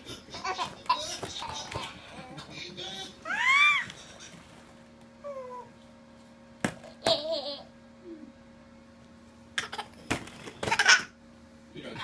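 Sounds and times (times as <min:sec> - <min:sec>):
baby squealing: 0:03.2 - 0:03.9.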